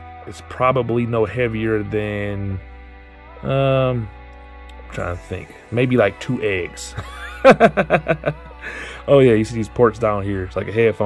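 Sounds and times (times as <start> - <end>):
background music: 0.0 - 11.0
man laughing: 6.9 - 9.0.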